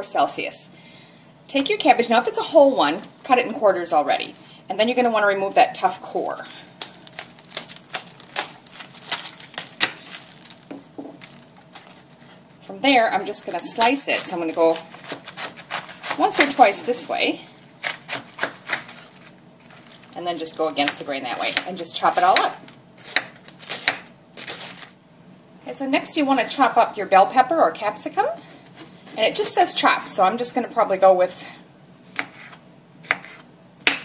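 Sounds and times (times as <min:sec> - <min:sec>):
knife cutting cabbage on board: 0:13.6 - 0:17.1, 0:17.8 - 0:19.0, 0:20.8 - 0:24.9, 0:32.1 - 0:34.0.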